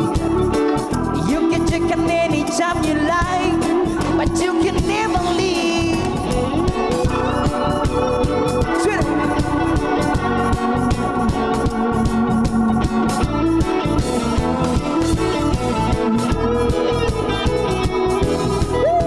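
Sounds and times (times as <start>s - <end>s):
bass: 0.0s - 19.0s
drum-kit beat: 0.0s - 19.0s
electric guitar: 0.0s - 19.0s
organ-like keyboard chords: 0.0s - 19.0s.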